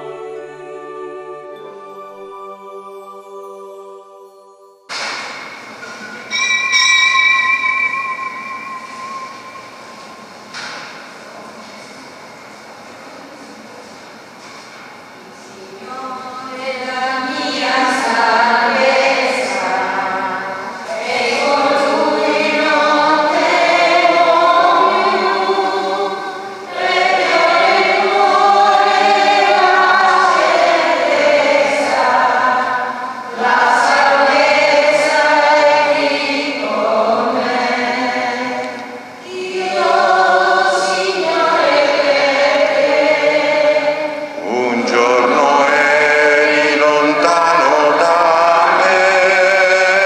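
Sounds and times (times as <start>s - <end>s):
choir singing a hymn: 0.0s - 12.0s, 15.5s - 50.0s.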